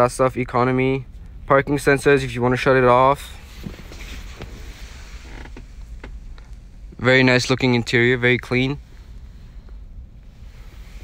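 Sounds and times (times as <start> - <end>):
leather car seat creaking: 3.4 - 6.6.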